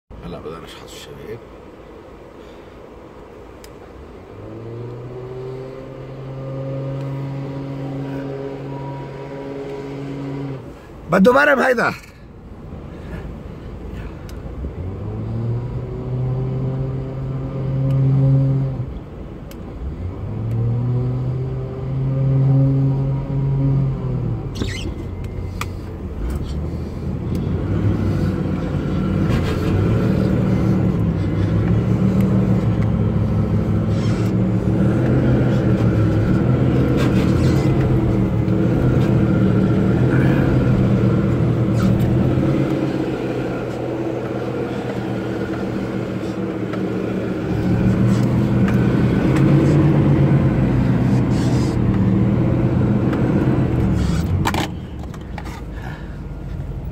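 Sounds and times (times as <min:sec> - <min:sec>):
engine revving and running hard: 0:04.3 - 0:10.8, 0:14.6 - 0:18.9, 0:19.8 - 0:24.6, 0:25.5 - 0:54.8.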